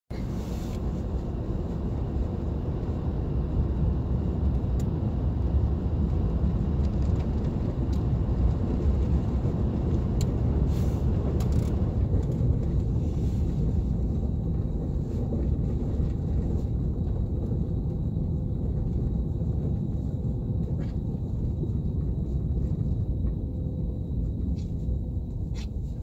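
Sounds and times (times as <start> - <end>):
car engine and tyres rumbling: 0.1 - 26.0.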